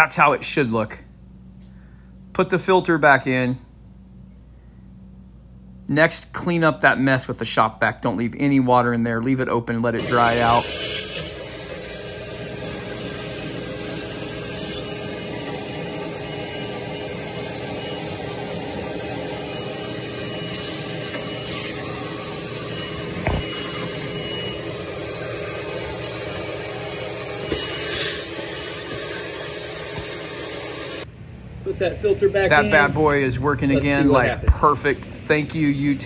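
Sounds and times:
shop vac sucking water: 10.0s - 31.1s.

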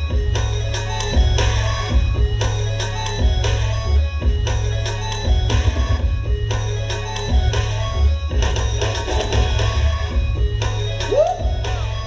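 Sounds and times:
loud music with heavy bass beat: 0.0s - 12.0s.

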